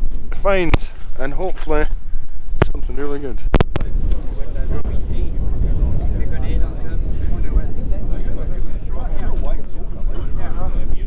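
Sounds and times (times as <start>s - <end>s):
wind buffeting microphone: 0.0s - 11.0s
distant crowd talking: 2.8s - 11.0s.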